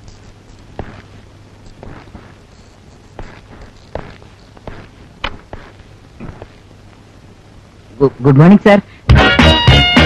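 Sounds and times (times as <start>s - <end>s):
steady low hum: 0.0s - 9.2s
footsteps on a floor: 0.7s - 1.1s, 1.7s - 2.4s, 3.1s - 6.6s.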